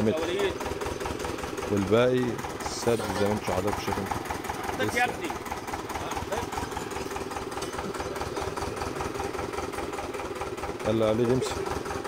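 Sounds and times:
small engine idling with knocking: 0:00.0 - 0:12.0.

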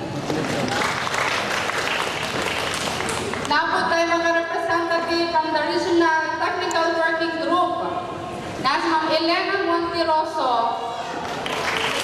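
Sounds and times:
audience applauding: 0:00.3 - 0:03.5, 0:11.2 - 0:12.0.

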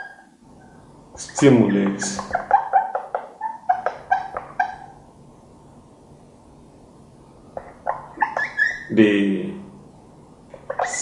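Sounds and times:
marker squeaking on whiteboard: 0:01.2 - 0:04.9, 0:07.6 - 0:08.9, 0:10.5 - 0:11.0.

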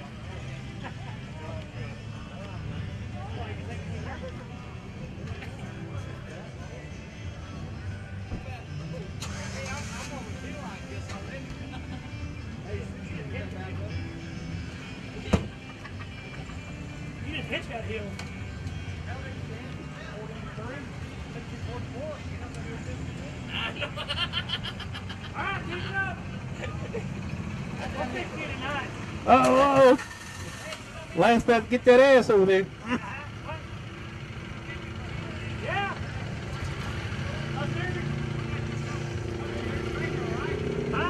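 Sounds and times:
distant voices: 0:14.7 - 0:41.0.

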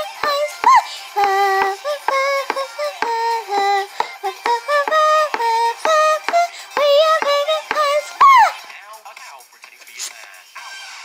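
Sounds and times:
synthesized singing voice: 0:00.0 - 0:10.8.

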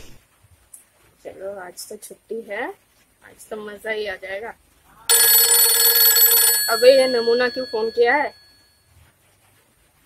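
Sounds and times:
person speaking: 0:05.0 - 0:08.4
mobile phone ringtone: 0:05.1 - 0:08.6.

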